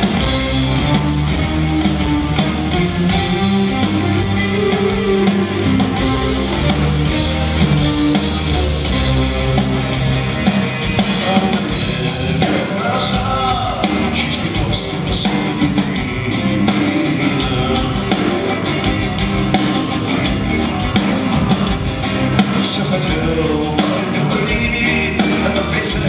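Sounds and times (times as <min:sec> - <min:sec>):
drum kit beat: 0:00.0 - 0:26.0
strummed electric guitars: 0:00.0 - 0:26.0.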